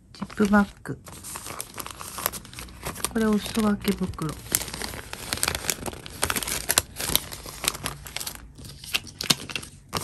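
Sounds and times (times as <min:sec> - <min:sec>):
plastic and paper bags crinkling: 0:00.2 - 0:10.0.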